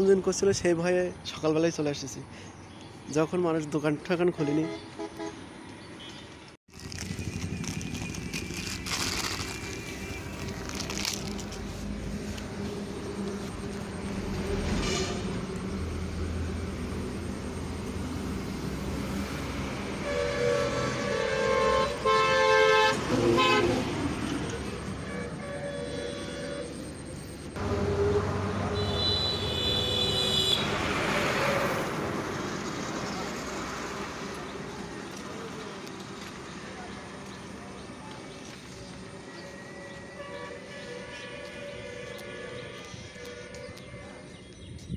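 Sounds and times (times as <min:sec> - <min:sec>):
road traffic hum: 0:00.0 - 0:44.9
vehicle horns tooting: 0:04.4 - 0:06.2, 0:14.6 - 0:15.5, 0:19.9 - 0:26.9, 0:27.6 - 0:31.8, 0:39.3 - 0:44.4.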